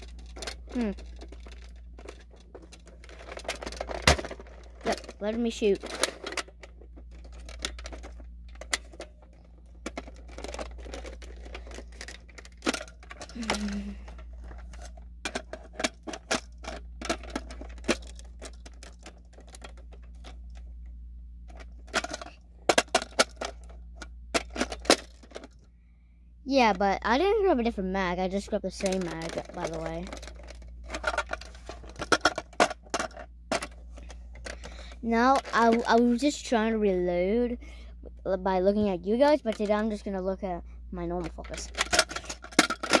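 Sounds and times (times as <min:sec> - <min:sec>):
toy blaster plastic clicks and rattles: 0:00.0 - 0:20.4, 0:21.5 - 0:23.8, 0:28.7 - 0:33.8, 0:34.4 - 0:36.1, 0:39.2 - 0:40.1, 0:41.1 - 0:43.0.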